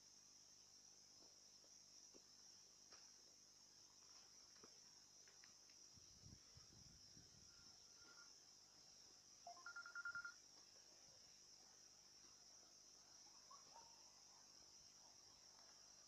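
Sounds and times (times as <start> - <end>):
insects buzzing: 0.0 - 16.0.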